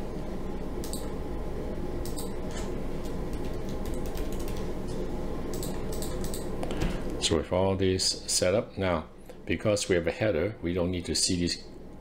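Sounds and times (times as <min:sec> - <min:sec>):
low background hum: 0:00.0 - 0:12.0
computer keys and mouse clicks: 0:00.8 - 0:01.1, 0:02.0 - 0:02.3, 0:03.0 - 0:04.7, 0:05.5 - 0:06.7.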